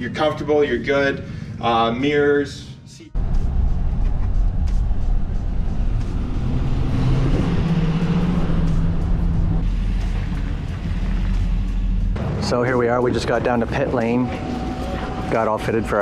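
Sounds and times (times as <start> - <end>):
car engine and road noise: 3.2 - 16.0.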